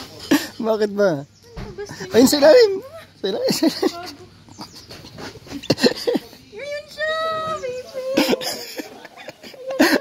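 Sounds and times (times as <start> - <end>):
woman laughing: 3.4 - 6.4, 8.0 - 10.0.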